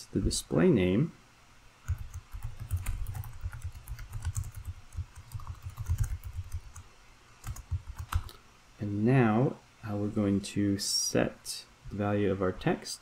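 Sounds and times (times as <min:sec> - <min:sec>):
computer keyboard typing: 0:01.9 - 0:06.8, 0:07.4 - 0:08.4.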